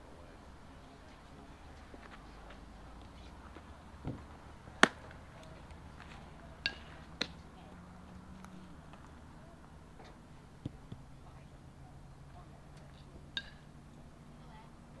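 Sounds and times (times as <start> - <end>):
baseball smacking into mitt: 4.8 - 5.2.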